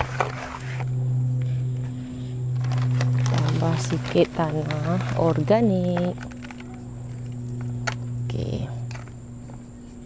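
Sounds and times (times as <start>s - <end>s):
low hum: 0.0s - 10.0s
thin high whine: 0.0s - 10.0s.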